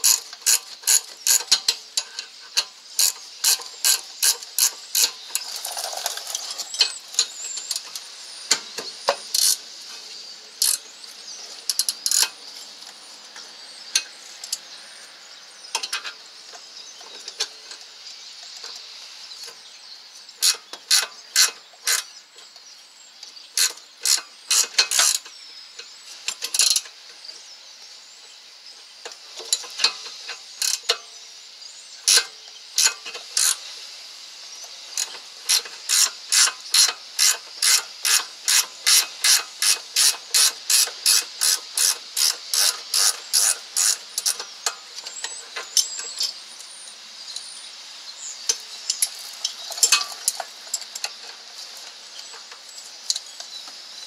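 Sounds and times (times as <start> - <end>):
ratchet wrench clicking: 0.0 - 8.0, 9.3 - 9.6, 10.6 - 10.8, 11.7 - 12.3, 20.4 - 22.1, 23.6 - 25.3, 26.3 - 26.9, 29.5 - 31.0, 32.1 - 33.7, 35.0 - 46.3.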